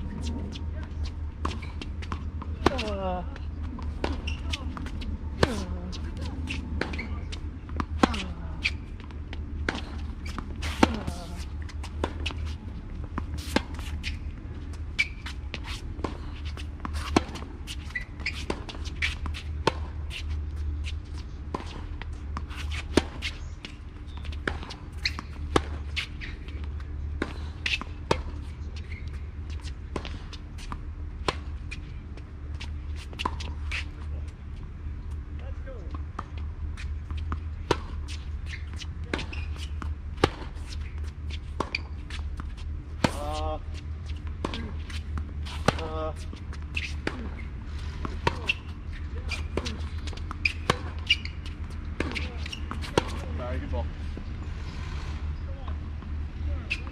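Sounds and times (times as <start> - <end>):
tennis balls struck and bouncing: 0.1 - 33.8, 35.8 - 54.5
sneakers scuffing on court: 3.7 - 56.9.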